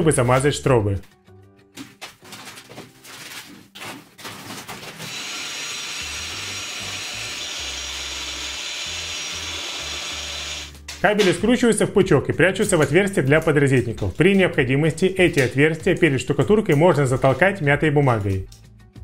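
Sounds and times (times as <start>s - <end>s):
electric mortar mixer running: 5.0s - 10.8s.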